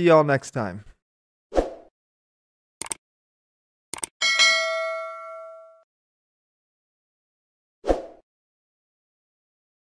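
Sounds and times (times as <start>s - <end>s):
mouse double click: 3.9s - 4.1s
bell ding: 4.2s - 5.8s.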